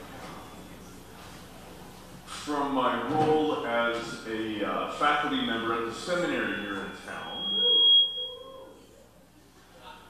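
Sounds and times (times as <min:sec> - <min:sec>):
man's voice: 0:02.3 - 0:07.5
microphone feedback whistling: 0:06.3 - 0:08.8.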